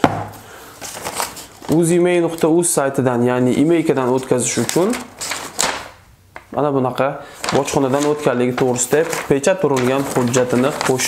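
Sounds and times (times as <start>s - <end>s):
paper rustling and crackling: 0.8s - 2.8s, 3.8s - 6.0s, 7.3s - 11.0s.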